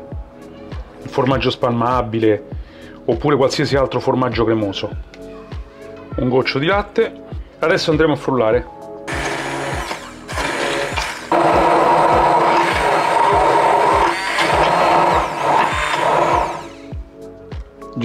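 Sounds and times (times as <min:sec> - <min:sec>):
immersion blender running: 0:09.1 - 0:16.9.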